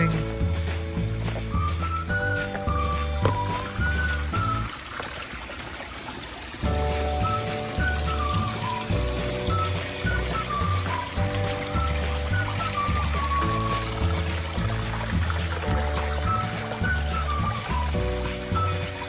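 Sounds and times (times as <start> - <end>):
background music: 0.0 - 4.8, 6.6 - 19.0
creek trickling: 0.0 - 19.0.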